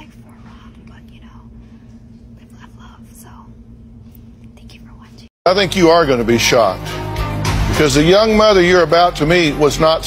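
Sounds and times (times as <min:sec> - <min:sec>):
steady low hum: 0:00.0 - 0:10.0
person whispering: 0:00.3 - 0:01.6, 0:02.4 - 0:03.5, 0:04.5 - 0:05.3.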